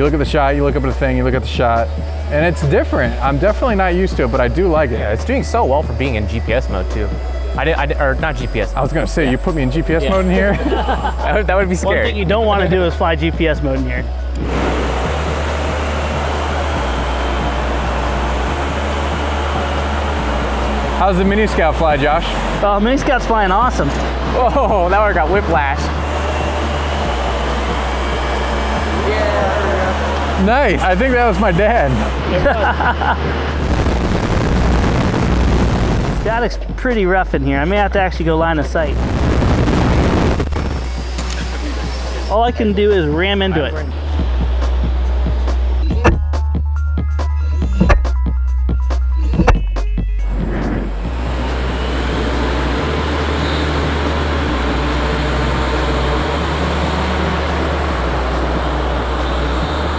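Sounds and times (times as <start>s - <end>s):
background music with bass: 0.0s - 59.9s
model aircraft motors whirring: 40.8s - 42.3s.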